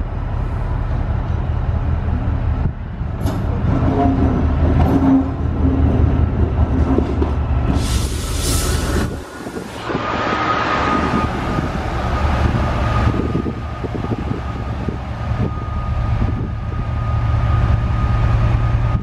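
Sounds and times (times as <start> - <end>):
locomotive engine humming: 0.0 - 19.0.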